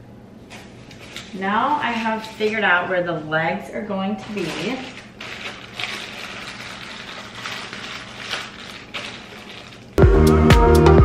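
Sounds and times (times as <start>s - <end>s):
plastic bag crinkling: 0.5s - 3.0s, 4.0s - 10.0s.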